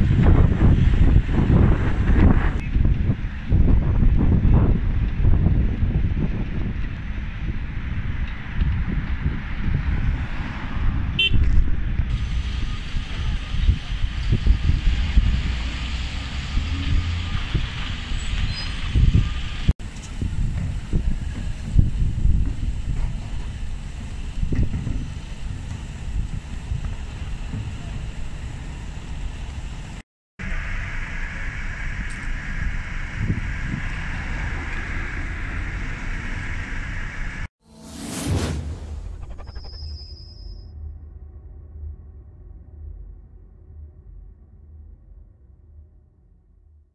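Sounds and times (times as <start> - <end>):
wind buffeting microphone: 0.0 - 30.0
street background noise: 0.0 - 37.5
whoosh: 37.2 - 42.2
logo sting: 37.6 - 41.2.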